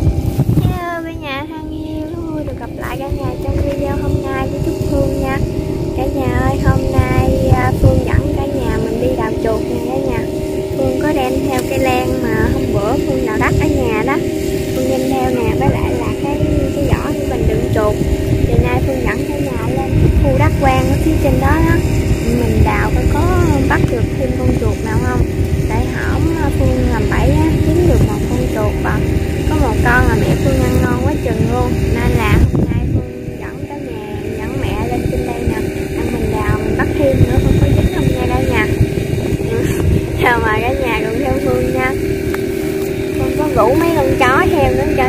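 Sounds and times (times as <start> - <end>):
small engine droning: 0.0 - 45.0
wind buffeting microphone: 0.0 - 45.0
woman talking: 0.6 - 42.0, 43.1 - 45.0.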